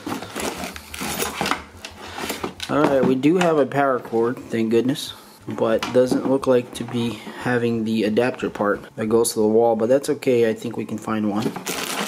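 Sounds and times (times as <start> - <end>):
cardboard and plastic rustling: 0.0 - 3.6, 11.3 - 12.0.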